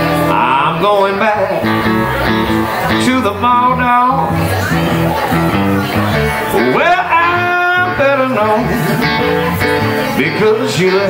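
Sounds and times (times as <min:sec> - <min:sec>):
electric blues band playing: 0:00.0 - 0:11.0
electric guitar fill: 0:00.0 - 0:11.0.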